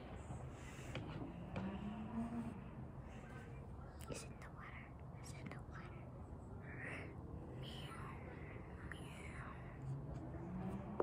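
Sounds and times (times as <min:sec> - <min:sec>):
child whispering: 0:03.2 - 0:09.9.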